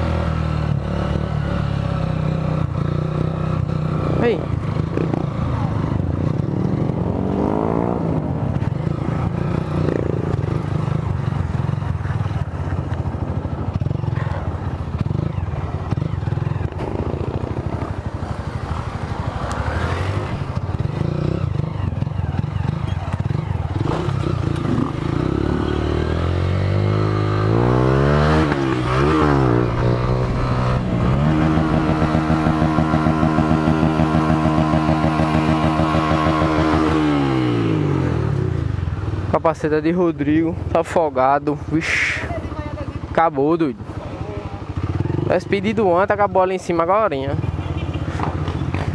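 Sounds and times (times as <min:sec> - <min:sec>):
motorcycle engine revving: 0:00.0 - 0:39.4, 0:42.2 - 0:46.4.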